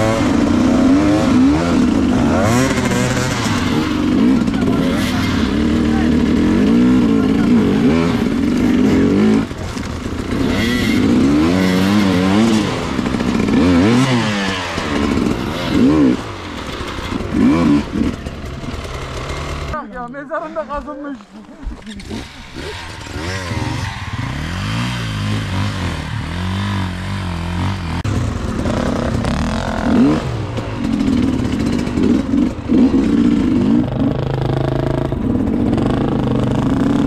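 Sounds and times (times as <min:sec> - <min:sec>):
dirt bike engines revving: 0:00.0 - 0:37.0
people talking: 0:03.7 - 0:09.7, 0:19.8 - 0:23.5.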